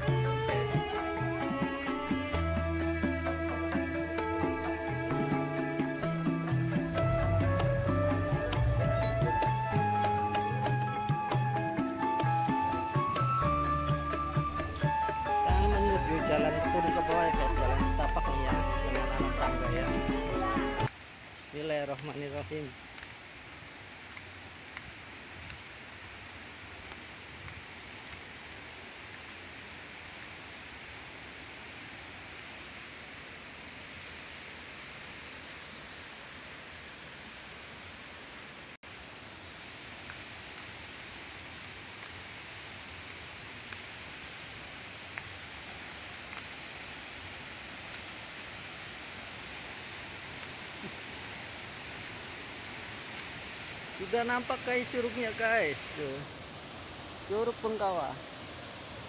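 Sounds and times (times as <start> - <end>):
waterfall rushing: 0.0 - 59.0.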